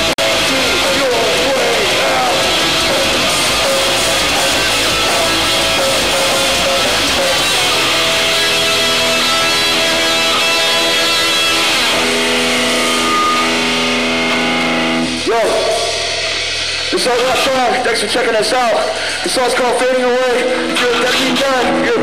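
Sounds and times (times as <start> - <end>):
drums: 0.0 - 22.0
electric guitar: 0.0 - 22.0
live rock band: 0.0 - 22.0.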